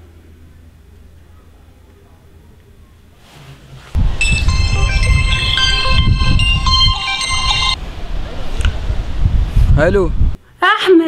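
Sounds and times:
mobile phone ringtone: 4.0 - 7.8.

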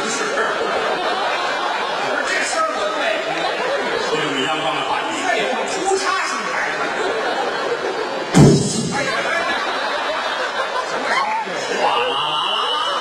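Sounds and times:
audience laughing and chattering: 0.0 - 13.0.

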